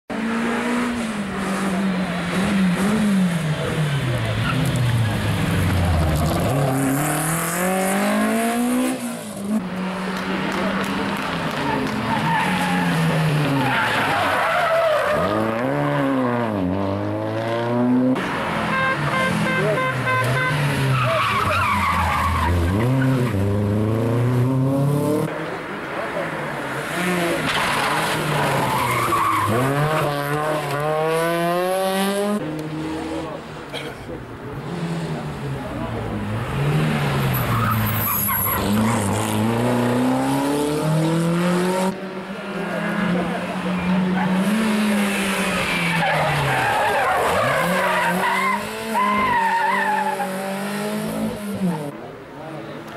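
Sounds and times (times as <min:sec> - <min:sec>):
rally car engines revving: 0:00.1 - 0:52.9.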